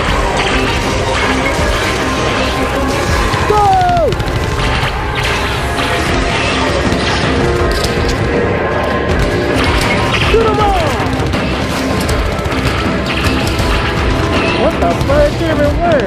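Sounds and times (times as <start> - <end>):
loud soundtrack music: 0.0 - 16.0
clattering sound effects: 4.3 - 16.0.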